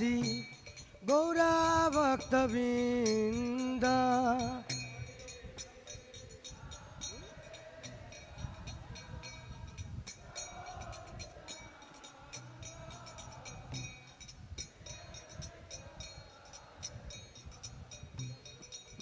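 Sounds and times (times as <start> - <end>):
hand cymbals struck: 0.0 - 19.0
wavering melody: 0.0 - 19.0.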